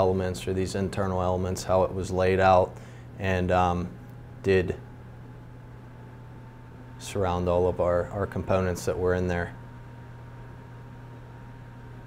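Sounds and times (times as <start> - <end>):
low hum: 0.0 - 12.0.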